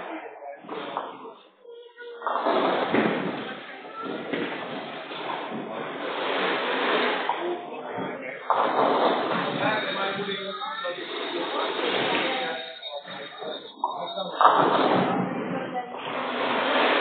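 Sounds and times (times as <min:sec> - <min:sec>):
voices in a hall: 0:00.0 - 0:17.0
bowling balls rolling: 0:02.2 - 0:17.0.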